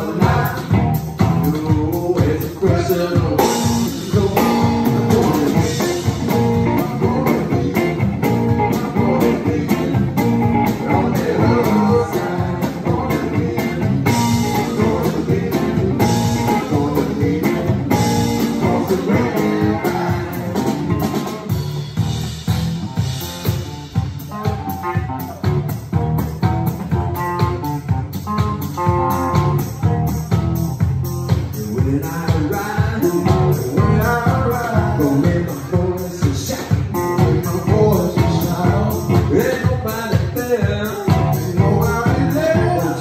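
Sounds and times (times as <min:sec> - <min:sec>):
bass: 0:00.0 - 0:43.0
drum kit: 0:00.0 - 0:43.0
electric guitar: 0:00.0 - 0:43.0.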